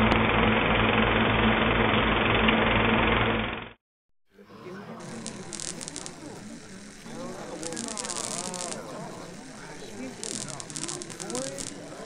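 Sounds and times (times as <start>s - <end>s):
overlapping voices chattering: 4.4s - 12.0s
neon sign buzzing: 5.0s - 12.0s.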